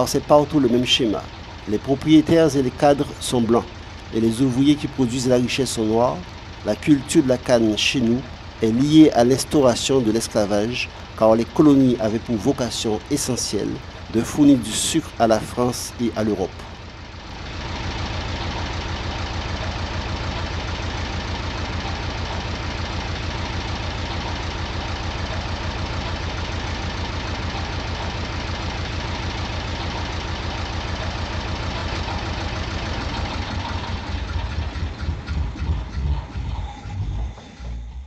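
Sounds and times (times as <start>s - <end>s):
machine with rapid mechanical beat: 31.8s - 38.0s.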